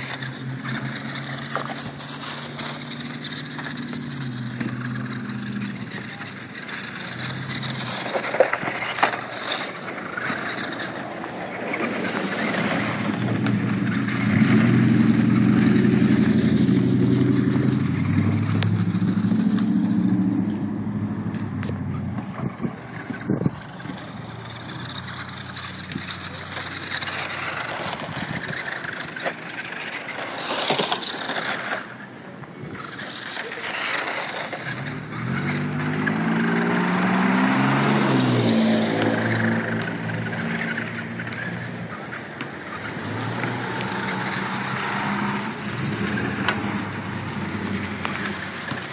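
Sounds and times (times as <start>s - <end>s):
toy truck motor whine: 0.0s - 20.2s, 22.8s - 48.9s
tyres crunching on gravel: 0.0s - 20.3s, 21.6s - 48.9s.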